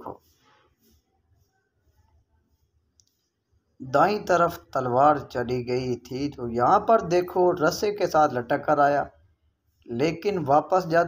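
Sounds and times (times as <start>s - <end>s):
man speaking: 0.0s - 0.2s, 3.8s - 9.2s, 9.9s - 11.0s
faint click: 3.0s - 3.3s.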